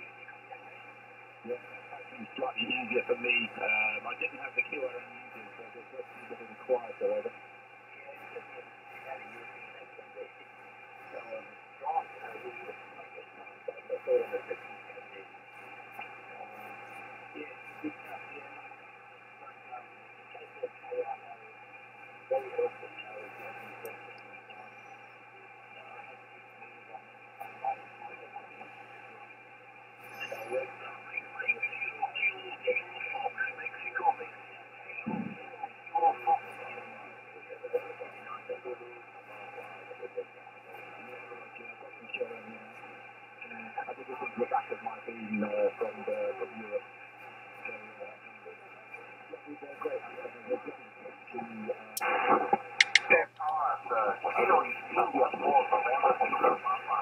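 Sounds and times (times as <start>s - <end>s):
faint steady radio whistles: 0.0s - 57.0s
radio band noise: 0.0s - 57.0s
weak distant radio voices: 0.0s - 57.0s.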